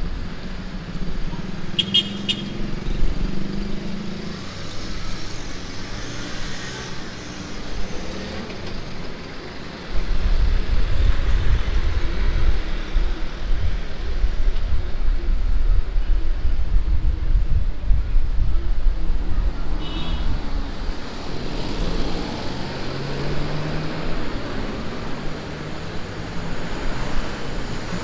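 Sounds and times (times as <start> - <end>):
car engine passing: 21.0 - 28.0.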